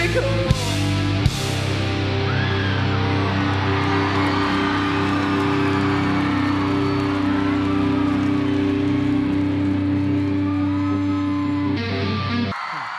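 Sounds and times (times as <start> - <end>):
electric guitars sustained chord: 0.0 - 12.6.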